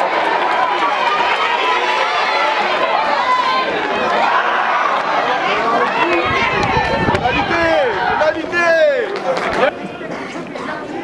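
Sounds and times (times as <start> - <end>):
players shouting calls: 0.0 - 9.9.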